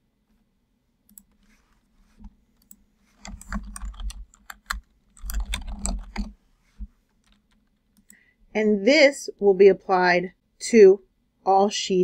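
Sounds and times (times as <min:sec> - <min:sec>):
computer keyboard typing: 0:02.6 - 0:06.4, 0:07.2 - 0:08.2.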